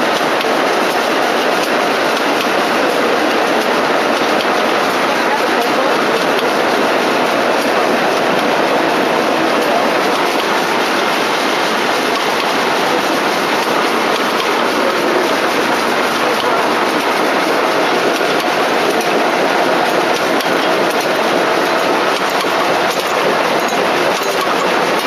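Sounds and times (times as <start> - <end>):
textile machinery clattering: 0.0 - 25.0.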